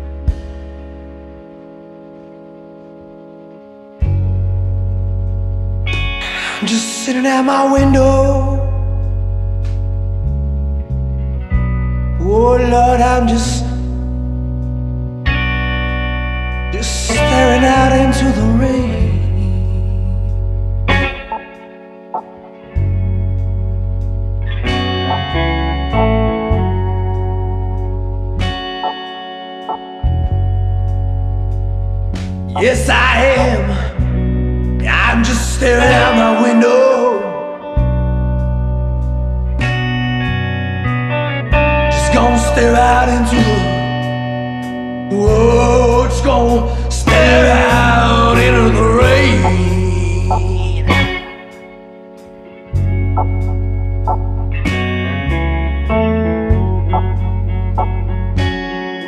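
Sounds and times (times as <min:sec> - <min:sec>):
bass guitar: 0:00.0 - 0:59.0
distorted electric guitar chord: 0:00.0 - 0:59.0.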